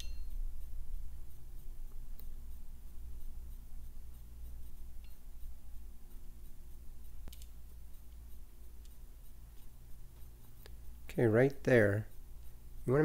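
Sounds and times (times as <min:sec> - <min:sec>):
steady low hum: 0:00.0 - 0:13.0
faint caliper clicks: 0:07.1 - 0:10.9.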